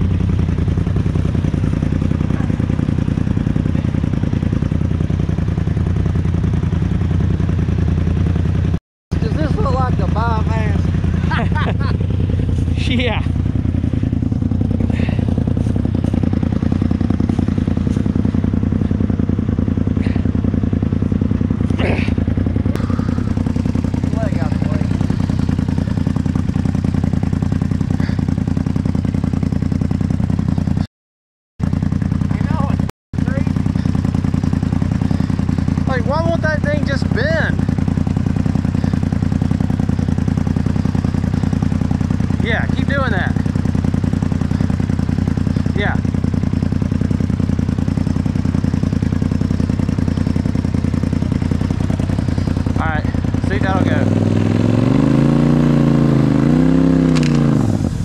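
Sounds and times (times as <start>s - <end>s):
vehicle engine running and revving: 0.0s - 30.9s, 31.6s - 58.0s.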